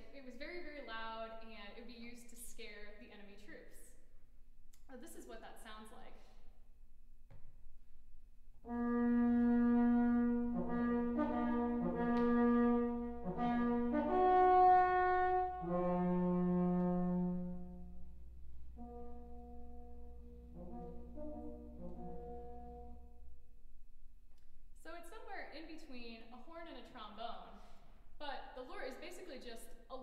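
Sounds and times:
bronze horn long held notes: 0:08.6 - 0:23.6.

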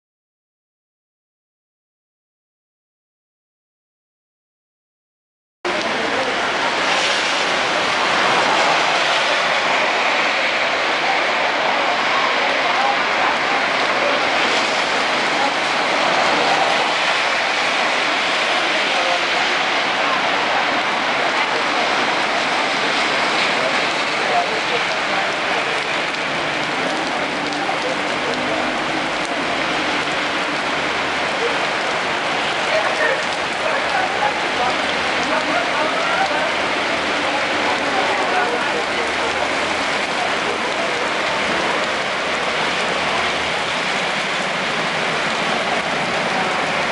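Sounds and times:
heavy rain splashing on paving: 0:05.7 - 0:46.9.

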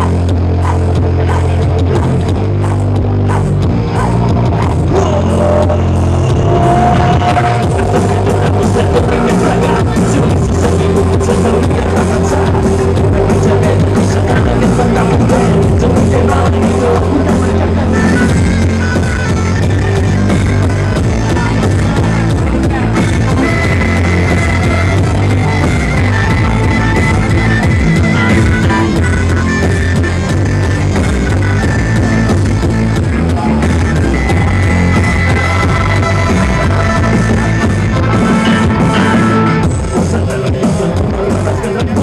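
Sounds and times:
electric bass line: 0:00.0 - 0:42.0
live band playing reggae-rock: 0:00.0 - 0:42.0.

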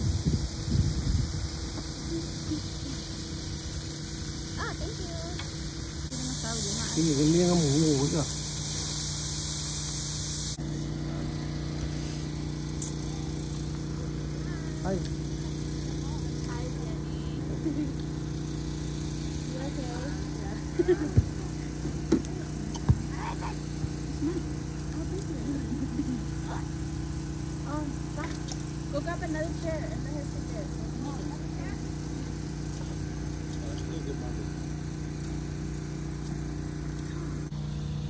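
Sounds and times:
meat sizzling on a grill: 0:00.0 - 0:37.5
steady low hum: 0:00.0 - 0:38.0.

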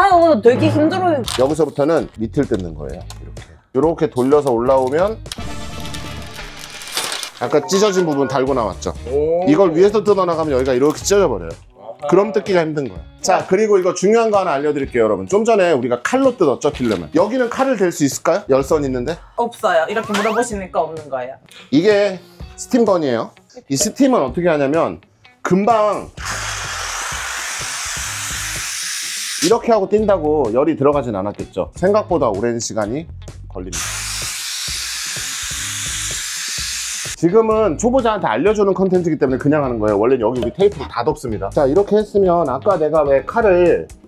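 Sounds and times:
background music: 0:00.0 - 0:44.0
tint film peeling off glass: 0:05.8 - 0:08.0
steam gun hissing: 0:26.2 - 0:29.5, 0:33.8 - 0:37.2.

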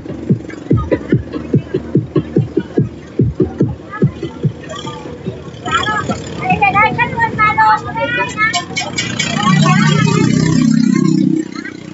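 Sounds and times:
go-kart engine running: 0:00.0 - 0:11.9
voices: 0:00.0 - 0:11.9.

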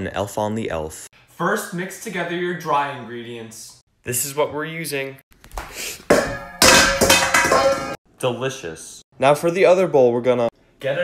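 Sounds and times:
steel mixing bowl clattering: 0:06.1 - 0:08.0.

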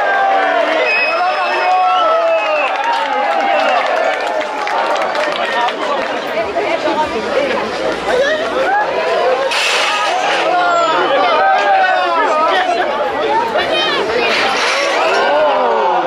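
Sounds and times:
crowd shouting: 0:00.0 - 0:06.1, 0:08.0 - 0:16.0.

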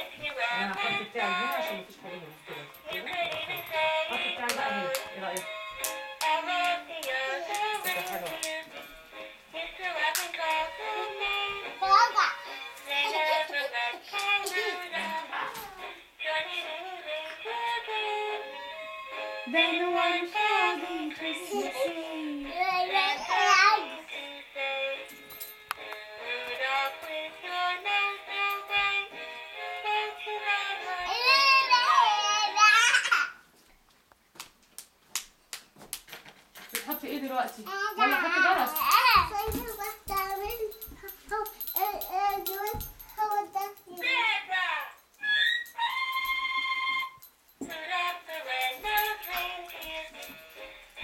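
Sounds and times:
toddler singing excitedly: 0:11.8 - 0:12.4, 0:21.2 - 0:24.0, 0:30.9 - 0:33.3, 0:37.7 - 0:44.1
toy singing christmas song: 0:26.2 - 0:33.0, 0:37.6 - 0:51.0.

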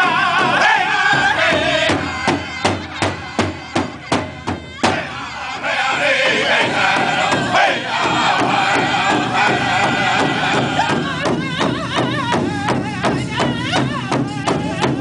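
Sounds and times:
large bass drum beating: 0:00.0 - 0:05.1, 0:06.6 - 0:15.0
group singing in high voices: 0:00.0 - 0:15.0.

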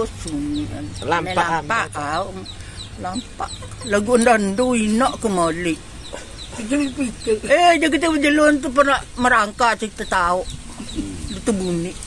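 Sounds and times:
woman's voice: 0:00.0 - 0:05.8, 0:06.4 - 0:10.6, 0:11.3 - 0:12.0
high chirping of chicks: 0:00.0 - 0:12.0.

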